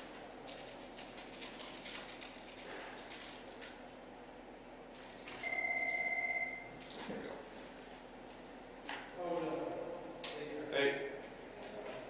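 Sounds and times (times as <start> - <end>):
telephone ringing: 5.4 - 6.8.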